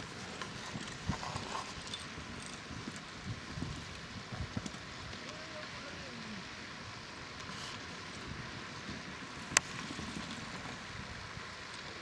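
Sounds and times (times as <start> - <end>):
wind buffeting microphone: 0.0 - 5.2.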